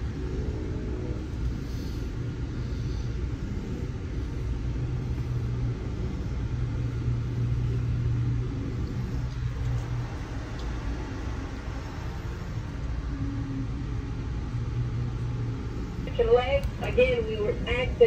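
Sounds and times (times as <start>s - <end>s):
train interior rumble and hum: 0.0s - 18.0s.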